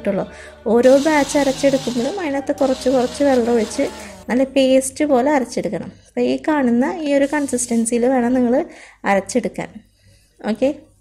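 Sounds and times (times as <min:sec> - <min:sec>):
woman talking: 0:00.0 - 0:09.8, 0:10.4 - 0:10.9.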